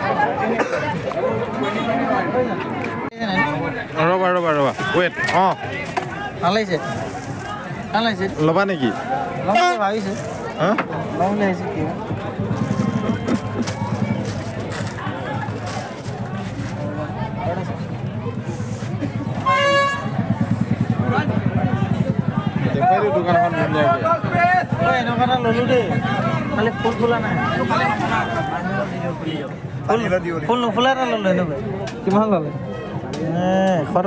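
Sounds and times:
horn toot: 9.4s - 10.1s, 19.4s - 20.5s.

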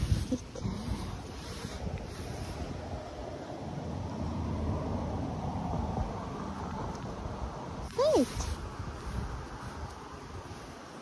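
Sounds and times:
wind buffeting microphone: 0.0s - 11.0s.

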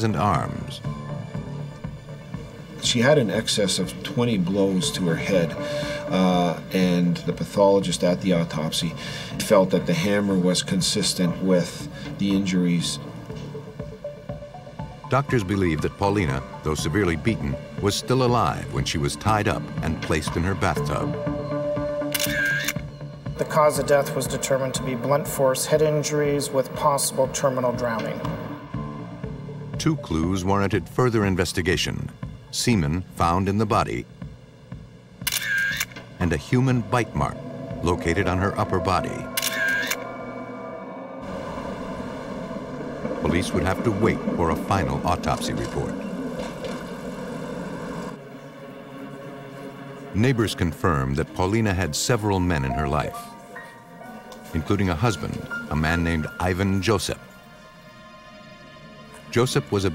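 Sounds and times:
background music: 0.0s - 59.9s
camera shutter whirring click: 22.1s - 22.8s, 35.3s - 36.0s, 39.4s - 40.0s
traffic noise: 35.3s - 50.2s
streetcar humming past: 40.0s - 50.6s.

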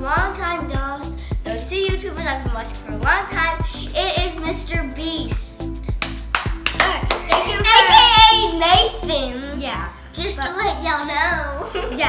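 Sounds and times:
background music: 0.0s - 12.0s
hand claps: 5.3s - 8.0s.

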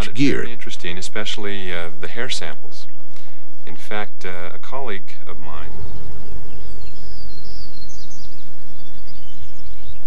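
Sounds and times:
birds chirping: 0.0s - 10.0s
steady low rumble: 0.0s - 10.0s.

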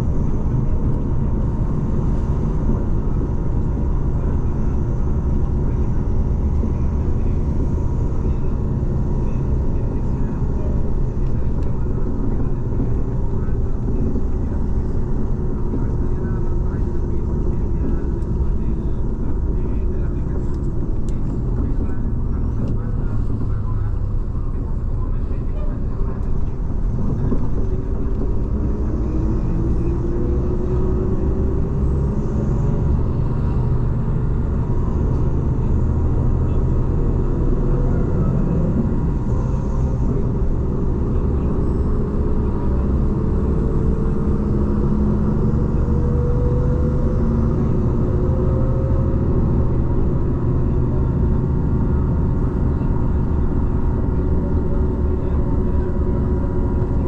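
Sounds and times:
road rumble: 0.0s - 57.0s
vehicle engine: 0.0s - 57.0s.

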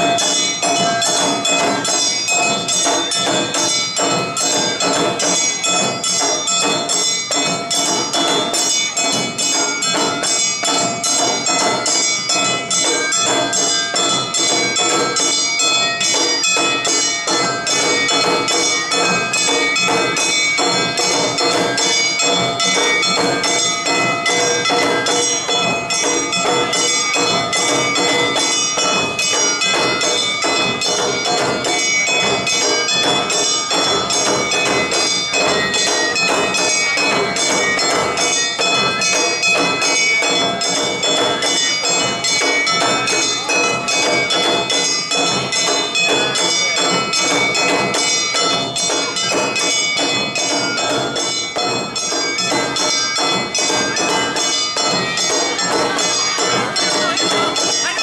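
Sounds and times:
drums beaten with sticks: 0.0s - 58.0s
hand gong ringing strokes: 0.0s - 58.0s.

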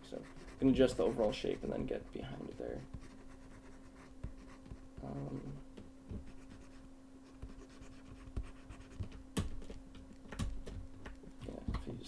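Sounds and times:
pen scratching on drawing tablet: 0.0s - 5.6s
steady low hum: 0.0s - 12.0s.

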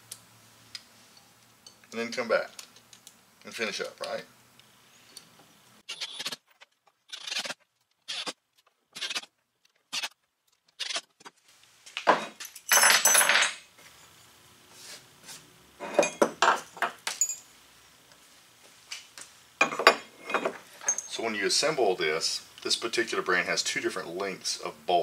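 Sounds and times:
steel hardware clinking: 16.0s - 17.5s, 19.6s - 21.2s.

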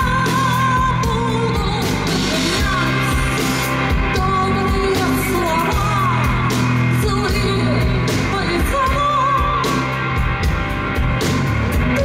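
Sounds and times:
woman singing: 0.0s - 10.0s
bass guitar: 0.0s - 12.0s
drums: 0.0s - 12.0s.

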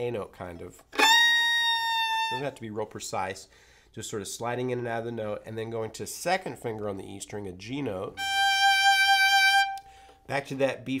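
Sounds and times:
fiddle bowed note: 1.0s - 2.6s, 8.2s - 9.9s.

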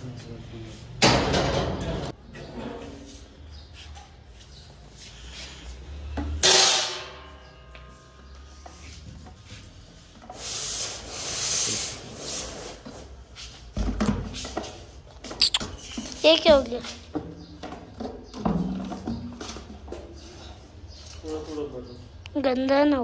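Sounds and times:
metal lid clanging on tiles: 6.4s - 7.4s
plastic bucket knocking on concrete: 17.1s - 19.4s.

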